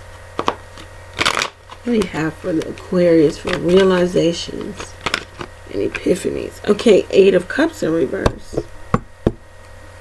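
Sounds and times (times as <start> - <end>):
steady low hum: 0.0 - 10.0
cards rustling: 0.4 - 6.2
woman speaking: 1.8 - 5.0, 5.6 - 8.7.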